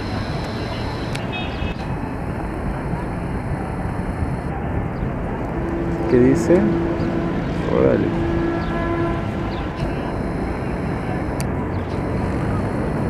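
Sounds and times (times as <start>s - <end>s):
distant indistinct voices: 0.0s - 13.0s
traffic hum: 0.0s - 13.0s.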